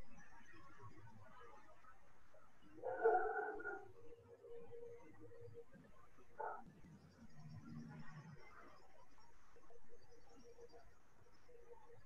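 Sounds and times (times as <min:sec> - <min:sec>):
high-pitched animal whine: 0:02.8 - 0:03.8.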